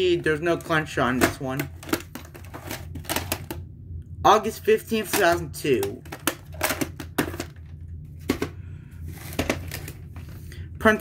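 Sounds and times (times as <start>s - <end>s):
plastic case clicking and rattling: 1.2s - 3.6s, 5.0s - 8.5s.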